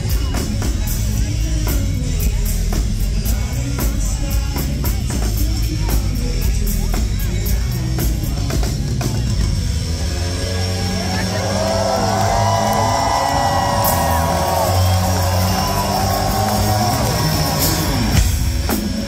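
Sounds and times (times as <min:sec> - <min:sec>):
distorted electric bass: 0:00.0 - 0:19.0.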